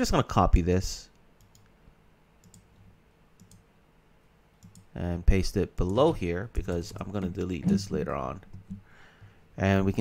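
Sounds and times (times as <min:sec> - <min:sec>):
low room hum: 0:00.0 - 0:10.0
computer mouse clicks: 0:01.1 - 0:01.8, 0:02.4 - 0:03.7, 0:04.6 - 0:04.9.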